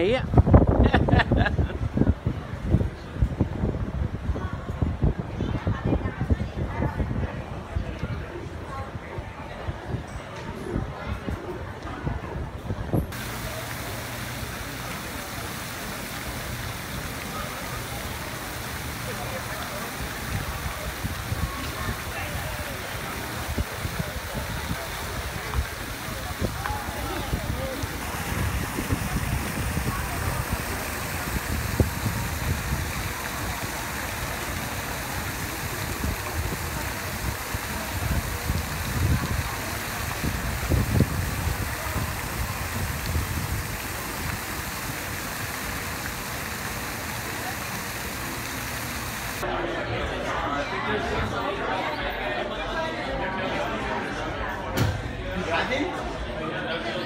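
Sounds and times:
people's voices: 0.0s - 57.0s
fountain water splashing into basin: 13.1s - 49.5s.

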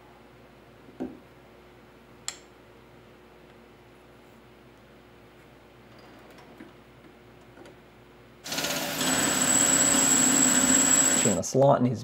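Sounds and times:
metal lathe machining: 8.5s - 11.4s.

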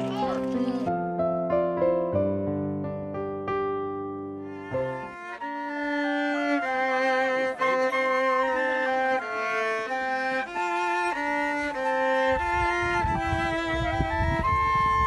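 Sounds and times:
violin playing slow melody: 4.4s - 15.0s
flute: 5.3s - 15.0s.

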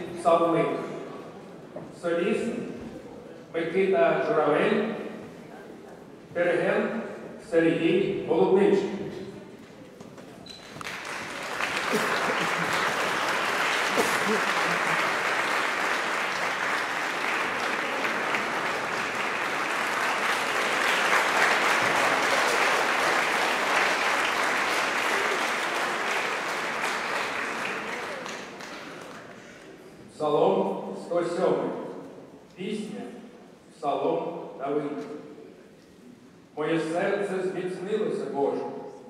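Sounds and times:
audience applauding: 10.6s - 29.6s.

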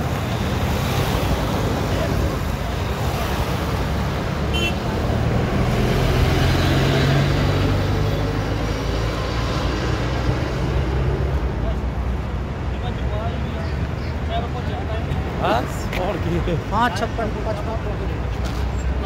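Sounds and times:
tyre noise on road: 0.0s - 19.0s.

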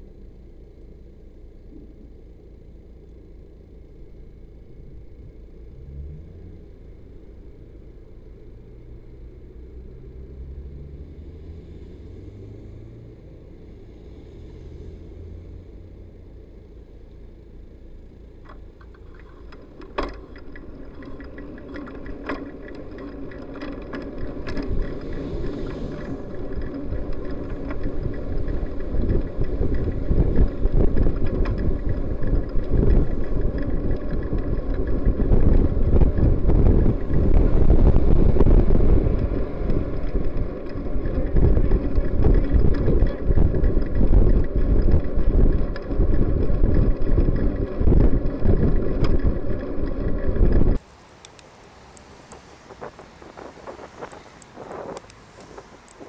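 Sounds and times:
wind buffeting microphone: 19.1s - 50.8s, 52.2s - 56.0s.

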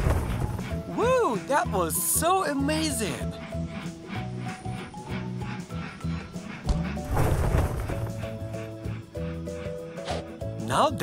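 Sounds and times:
cheerful background music: 0.0s - 11.0s.

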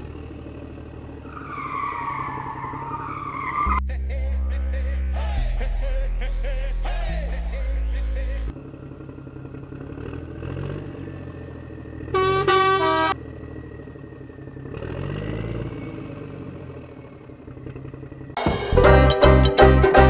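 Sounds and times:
truck engine revving: 0.0s - 20.0s
truck horn honk: 12.1s - 13.2s.

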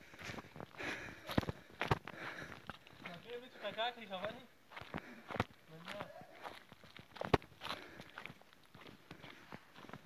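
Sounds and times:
footsteps on stony ground: 0.0s - 10.0s.

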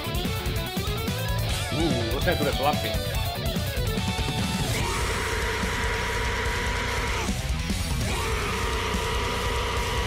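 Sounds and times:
heavy drums and bass: 0.0s - 10.0s
metal song with held vocal notes: 0.0s - 10.0s.

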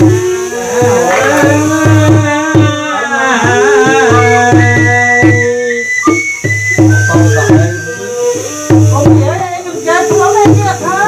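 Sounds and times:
sustained high melody: 0.0s - 10.9s
hand drum beating: 0.0s - 11.0s.

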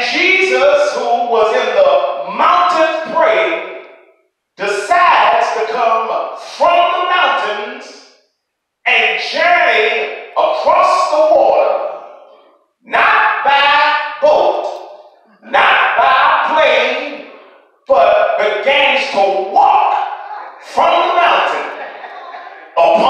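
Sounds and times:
man preaching through a microphone: 0.0s - 4.0s, 4.6s - 8.2s, 8.9s - 22.0s, 22.6s - 23.0s.

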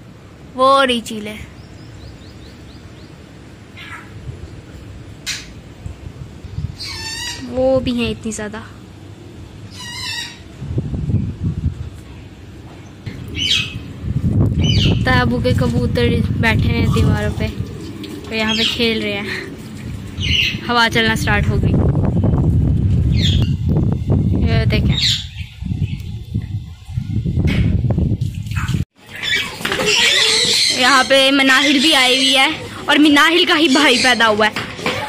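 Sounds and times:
wind rumbling on microphone: 1.6s - 29.0s
woman speaking: 7.4s - 8.8s, 15.0s - 17.6s, 18.3s - 19.5s, 20.6s - 21.8s, 24.4s - 25.0s, 30.8s - 34.6s
children squealing and playing: 29.0s - 35.0s.

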